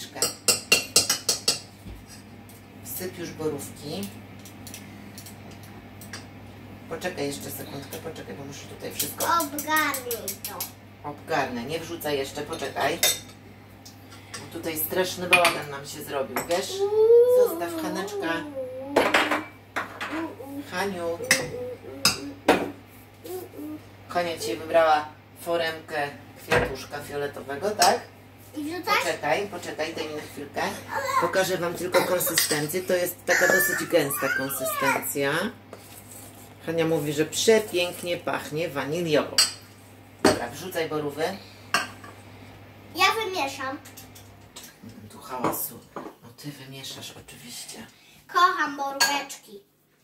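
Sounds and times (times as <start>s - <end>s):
spoons clinking against metal bowl: 0.2s - 2.2s, 32.3s - 32.8s.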